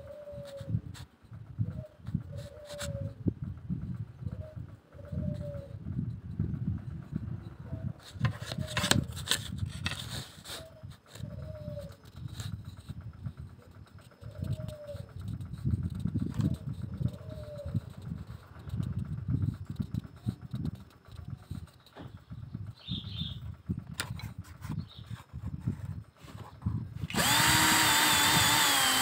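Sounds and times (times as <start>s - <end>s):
dove cooing: 0.0s - 0.8s, 1.6s - 3.3s, 4.2s - 5.9s, 10.6s - 12.2s, 13.6s - 15.3s, 16.5s - 18.6s.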